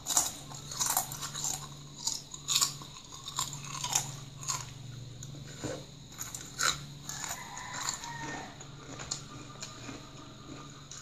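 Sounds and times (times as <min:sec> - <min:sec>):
faint low hum: 0:00.0 - 0:11.0
potato chips crunching: 0:00.0 - 0:11.0.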